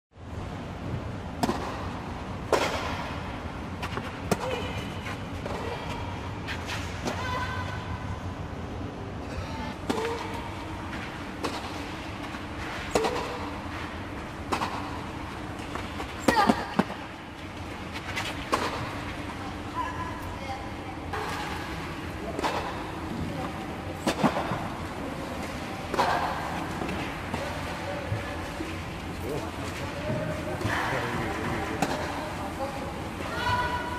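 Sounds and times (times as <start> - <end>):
tennis balls struck by racquets: 1.3 - 3.2, 9.8 - 10.4, 11.3 - 11.9, 14.4 - 17.1, 18.4 - 19.2, 22.3 - 23.0, 24.0 - 24.7, 31.7 - 32.2
voices talking: 19.0 - 33.9.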